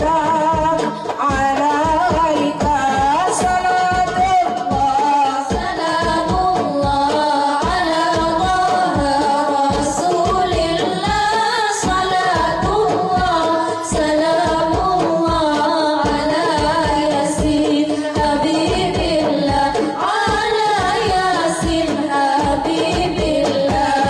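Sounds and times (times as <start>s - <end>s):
girls singing into microphones: 0.0s - 24.0s
steady beat: 5.5s - 24.0s.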